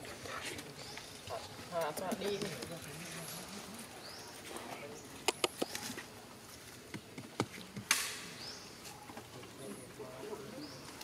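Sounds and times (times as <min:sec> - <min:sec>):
movement clicks on leafy ground: 0:00.0 - 0:09.6.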